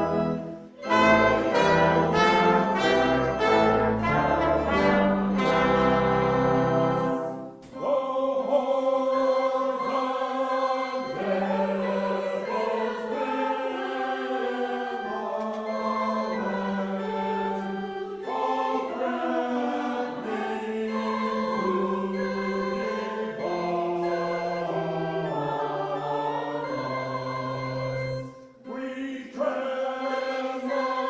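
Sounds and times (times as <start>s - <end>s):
brass chord: 0.0s - 7.8s
mixed choir singing a hymn: 0.0s - 31.0s.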